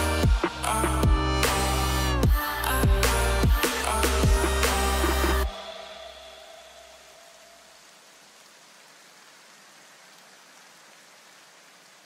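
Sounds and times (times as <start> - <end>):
electronic background music: 0.0 - 7.1
faint steady hiss: 1.5 - 12.0.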